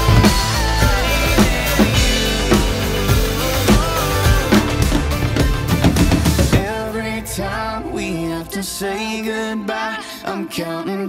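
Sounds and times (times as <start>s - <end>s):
drum kit fill: 0.0s - 9.4s
pop-country backing track: 0.0s - 10.3s.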